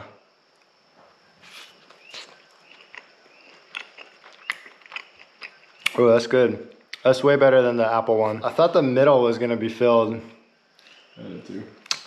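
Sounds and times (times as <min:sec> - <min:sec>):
wet mouth chewing clicks: 0:01.5 - 0:06.0.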